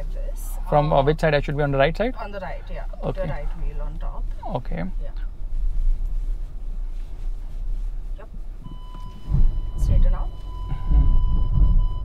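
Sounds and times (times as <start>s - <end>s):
car cabin rumble: 0.0s - 12.0s
parking sensor high beep: 8.6s - 12.0s.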